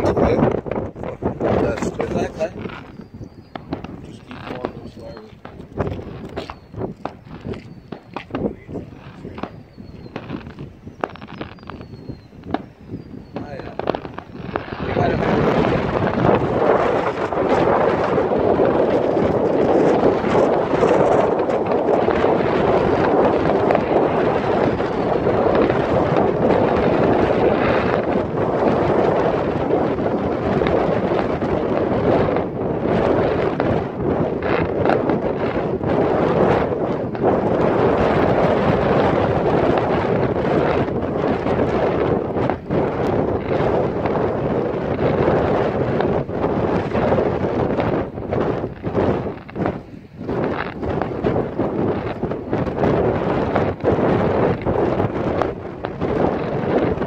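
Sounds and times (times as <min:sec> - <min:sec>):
fireworks bangs: 0:00.0 - 0:57.0
falling firework whistles: 0:06.2 - 0:14.6.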